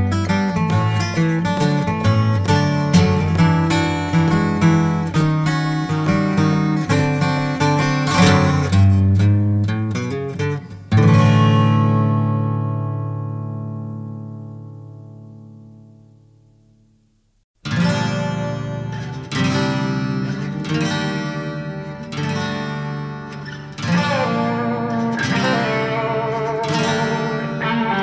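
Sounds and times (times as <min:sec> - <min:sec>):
acoustic guitar picking: 0:00.0 - 0:16.4, 0:17.6 - 0:28.0.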